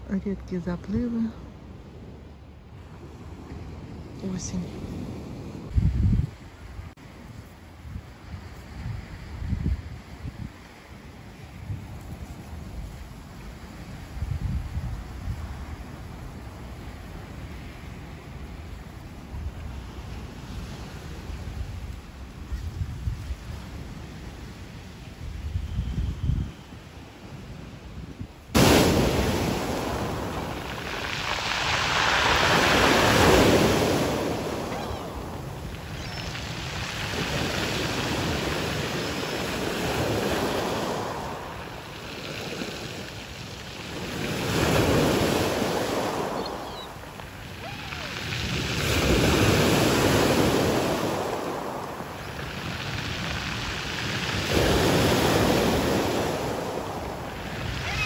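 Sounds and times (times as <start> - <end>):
waves washing up pebble beach: 28.6 - 58.0.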